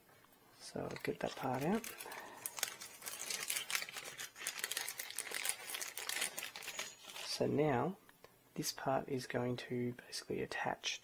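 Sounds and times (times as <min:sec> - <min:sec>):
plastic bag crinkling: 0:00.6 - 0:07.5.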